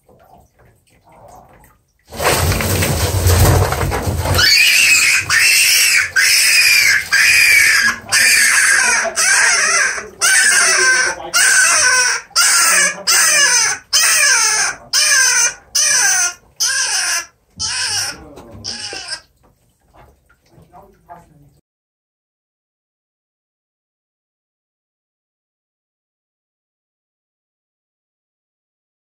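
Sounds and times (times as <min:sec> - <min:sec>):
rabbit screaming: 0:04.2 - 0:19.3.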